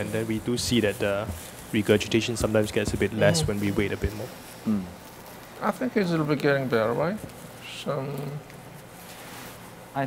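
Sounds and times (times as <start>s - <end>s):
room hiss and hum: 0.0s - 10.0s.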